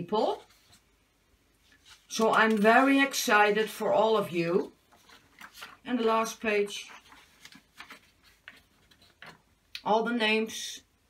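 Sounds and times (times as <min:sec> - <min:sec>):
woman speaking: 0:00.0 - 0:00.5, 0:02.1 - 0:04.8, 0:05.8 - 0:07.0, 0:09.8 - 0:10.9
paper ticks and crackles: 0:01.7 - 0:03.8, 0:04.9 - 0:09.8.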